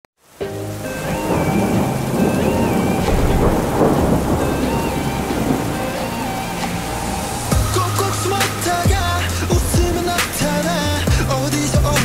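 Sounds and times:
rain: 0.2 - 12.0
melody of long held notes: 0.4 - 12.0
thunder: 1.0 - 10.1.

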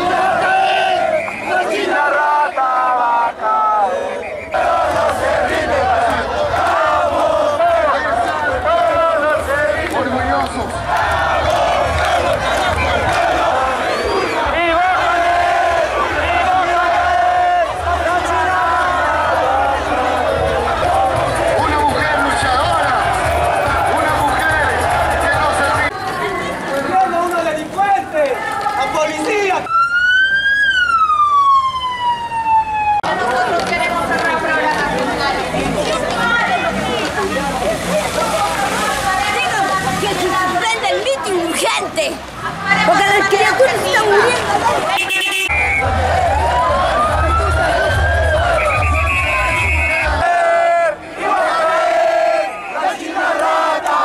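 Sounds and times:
crowd of protesters shouting: 0.0 - 29.7, 33.0 - 54.0
voices: 0.0 - 31.0, 31.9 - 54.0
police siren wail: 29.6 - 33.4, 45.5 - 50.2.

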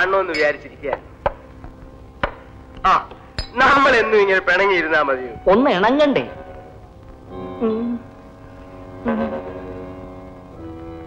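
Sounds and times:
faint steady hum: 0.0 - 11.0
sharp knocks: 2.2 - 2.5.

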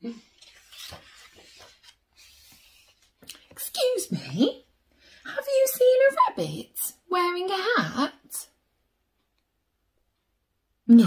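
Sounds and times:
paper page turning: 0.1 - 3.7.

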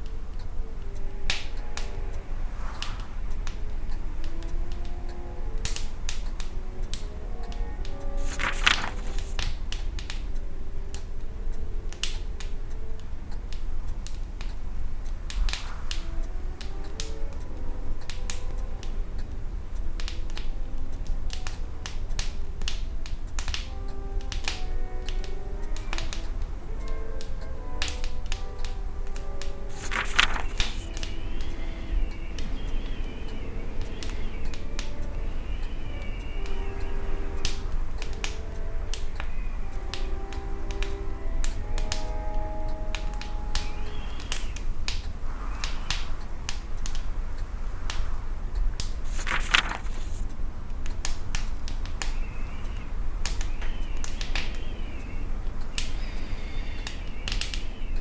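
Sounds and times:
quiet music: 0.0 - 58.0
wood fire crackling: 0.0 - 58.0
wavering high whistle: 30.5 - 44.7.

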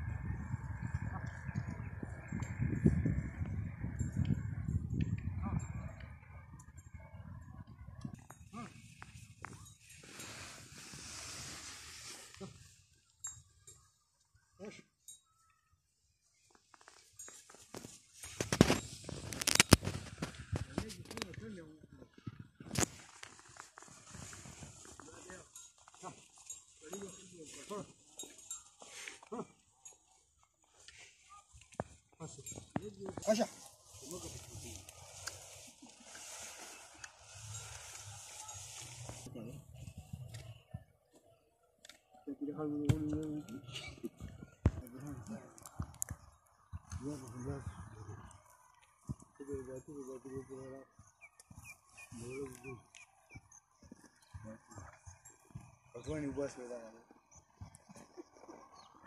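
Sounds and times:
ox bells jingling: 13.1 - 15.6, 16.7 - 20.6, 24.7 - 35.0, 36.1 - 39.3, 48.8 - 59.0
bird chirping: 39.4 - 59.0.

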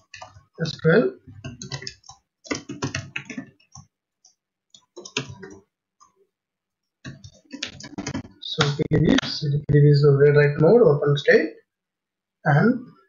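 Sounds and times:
typing on a keyboard: 0.0 - 0.4, 1.4 - 6.1.

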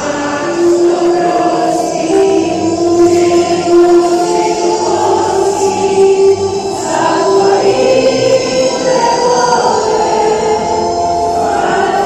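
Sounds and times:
youth choir singing: 0.0 - 12.0.

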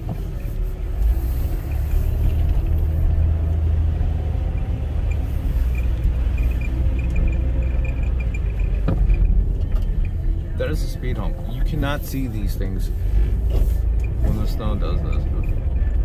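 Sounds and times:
car engine and tyre noise: 0.0 - 16.0.

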